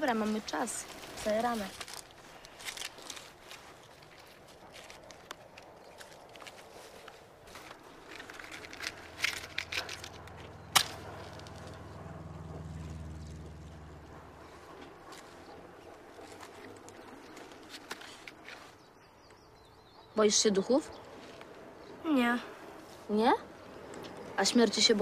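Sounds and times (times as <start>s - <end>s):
quiet rustling and handling: 0.0s - 19.5s, 21.0s - 25.0s
low hum: 3.9s - 18.2s.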